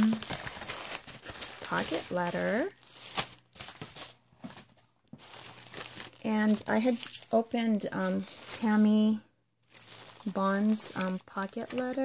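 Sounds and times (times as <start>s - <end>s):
paper packaging rustling: 0.0s - 12.0s.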